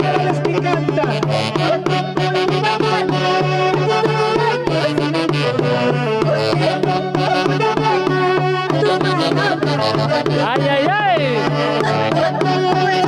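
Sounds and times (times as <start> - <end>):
percussion: 0.0 - 13.0
saxophones playing: 0.0 - 13.0.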